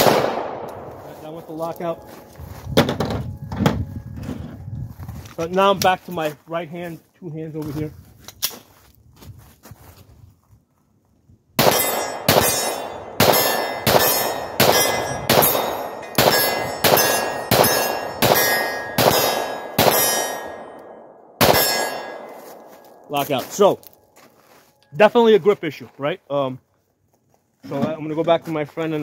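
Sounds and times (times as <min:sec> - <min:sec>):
pistol shots: 0:00.0 - 0:01.1, 0:11.6 - 0:22.4
steel target ringing: 0:00.0 - 0:02.6, 0:11.6 - 0:23.9.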